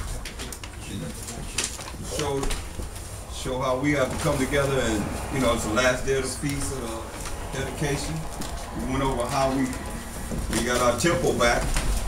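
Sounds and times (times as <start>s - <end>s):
soft knocks and rustles: 6.5s - 12.0s.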